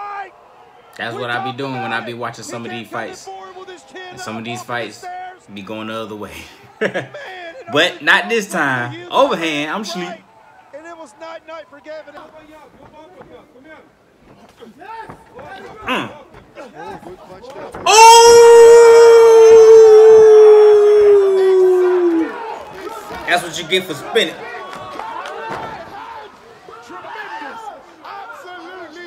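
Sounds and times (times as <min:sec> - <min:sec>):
excited voices shouting: 0:00.0 - 0:04.2, 0:17.8 - 0:29.0.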